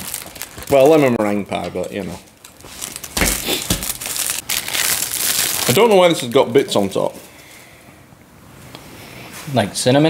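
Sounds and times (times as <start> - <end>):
foil pouch crinkling: 0.0 - 7.0.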